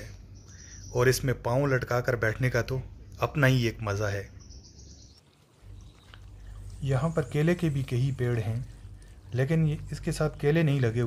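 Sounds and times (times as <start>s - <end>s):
low steady rumble: 0.0s - 11.0s
water trickling in a channel: 5.2s - 11.0s
man speaking: 6.8s - 11.0s.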